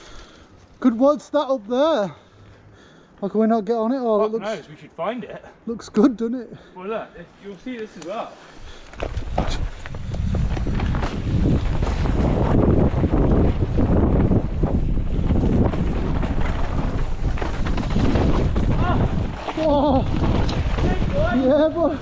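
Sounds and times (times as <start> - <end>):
bike tyre rumble: 7.6 - 22.0
wind buffeting microphone: 8.6 - 22.0.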